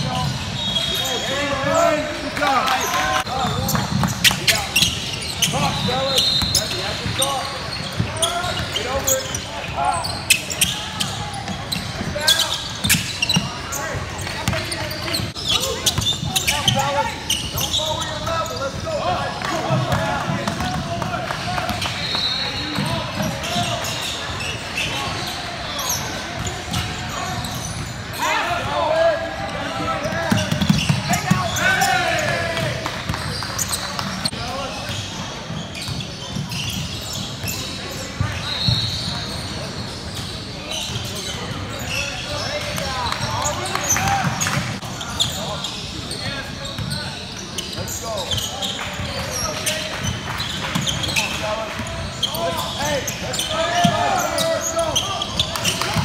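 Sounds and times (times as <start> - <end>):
sneakers squeaking: 0.0 - 56.0
people shouting in gym: 28.2 - 32.8.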